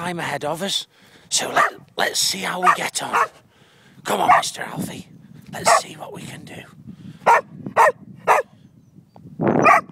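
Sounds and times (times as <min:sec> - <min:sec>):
dog barking: 0:01.5 - 0:01.8, 0:02.6 - 0:03.4, 0:04.2 - 0:04.5, 0:05.7 - 0:05.9, 0:07.3 - 0:08.5, 0:09.6 - 0:09.9.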